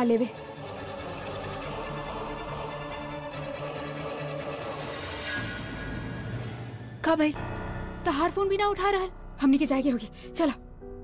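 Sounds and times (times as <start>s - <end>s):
woman's voice: 0.0s - 0.4s.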